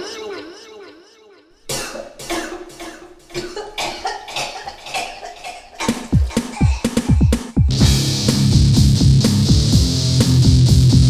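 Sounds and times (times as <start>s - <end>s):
wavering voice: 0.0s - 2.7s
person coughing and gagging: 1.7s - 7.7s.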